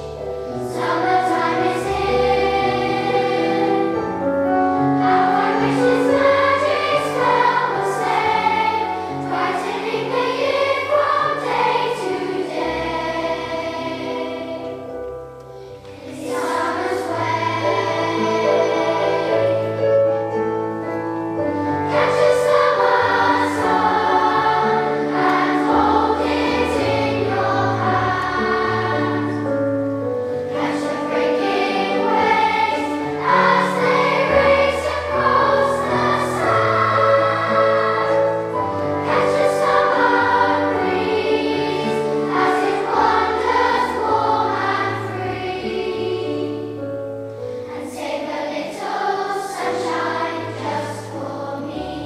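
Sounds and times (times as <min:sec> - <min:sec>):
children's choir singing: 0:00.0 - 0:52.0.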